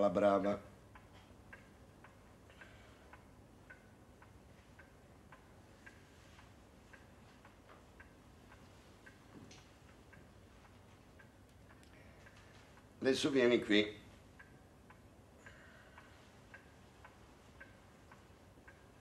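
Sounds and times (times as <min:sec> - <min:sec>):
clock ticking: 0:00.0 - 0:19.0
low background hiss: 0:00.0 - 0:19.0.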